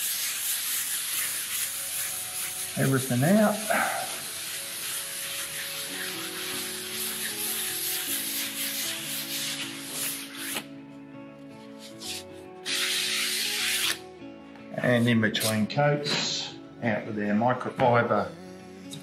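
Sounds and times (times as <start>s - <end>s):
sandpaper rubbing on wood: 0.0s - 10.7s, 11.7s - 14.0s.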